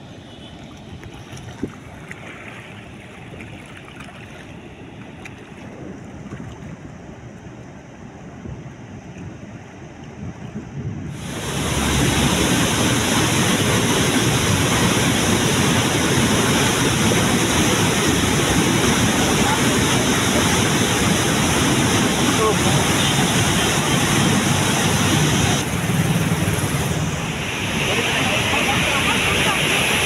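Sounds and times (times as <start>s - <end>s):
wind on microphone: 5.4s - 7.3s, 8.3s - 22.2s
water gushing under a gate: 11.1s - 30.0s.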